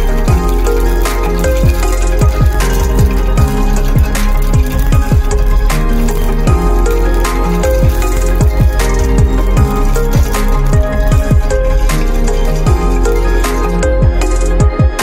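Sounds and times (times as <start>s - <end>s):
electronic background music: 0.0s - 15.0s.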